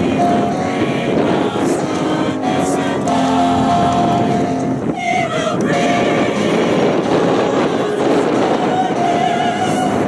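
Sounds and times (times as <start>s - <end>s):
carolers singing in parts: 0.0s - 10.0s.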